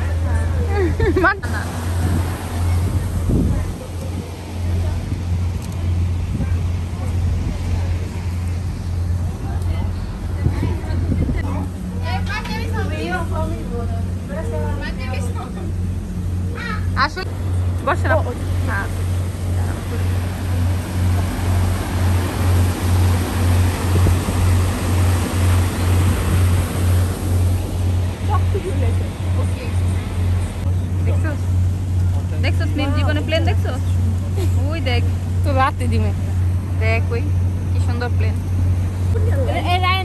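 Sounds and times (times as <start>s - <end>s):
people speaking: 0.0s - 8.5s, 9.1s - 15.8s, 16.5s - 21.9s, 28.2s - 38.4s, 39.2s - 40.0s
boat engine drone: 0.0s - 40.0s
voices talking: 0.0s - 40.0s.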